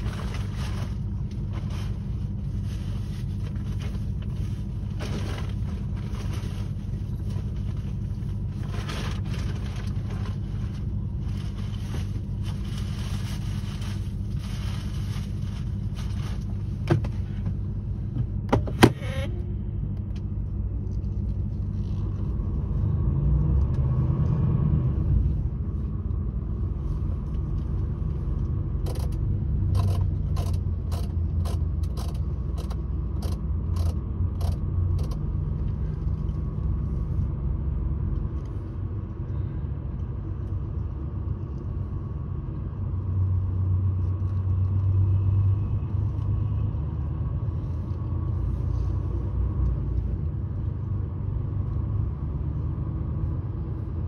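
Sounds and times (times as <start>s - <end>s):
vehicle engine and road rumble: 0.0s - 54.0s.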